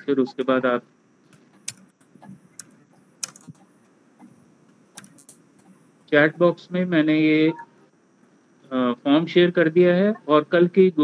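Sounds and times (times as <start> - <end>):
computer keyboard clicks: 2.6 - 3.6.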